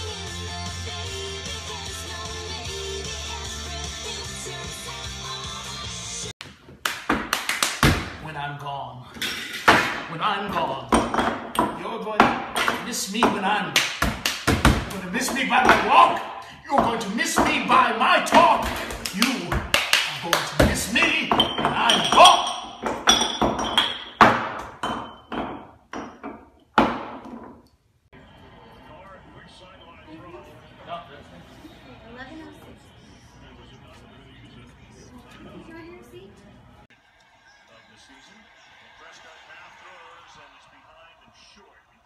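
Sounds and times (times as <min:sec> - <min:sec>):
music: 0:00.0 - 0:06.3
hand claps: 0:06.8 - 0:08.2, 0:13.8 - 0:15.0, 0:18.4 - 0:21.0
cups struck on wooden floor: 0:10.9 - 0:19.9, 0:20.5 - 0:27.6.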